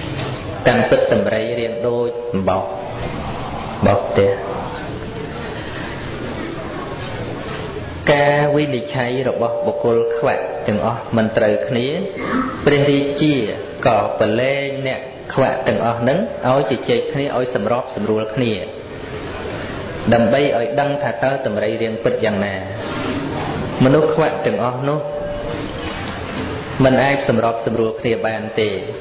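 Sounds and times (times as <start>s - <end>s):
man chanting: 0.6s - 2.8s, 20.1s - 22.4s
monk chanting: 0.6s - 4.6s, 8.0s - 18.2s, 20.1s - 22.4s.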